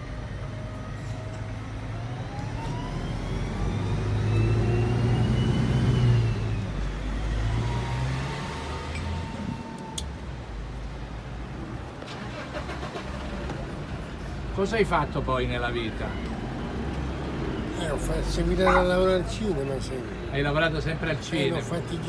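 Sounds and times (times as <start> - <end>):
vehicle passing close by: 2.0 - 10.0.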